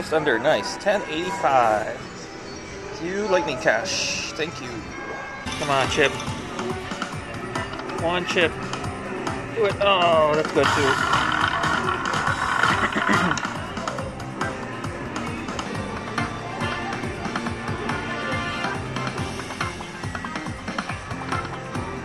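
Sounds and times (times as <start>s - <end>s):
slot machine bonus music: 5.5s - 8.6s, 9.4s - 13.5s.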